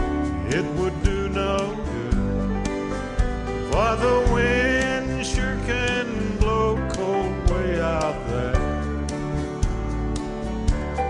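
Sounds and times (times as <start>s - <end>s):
acoustic guitar: 0.0s - 11.0s
bass: 0.0s - 11.0s.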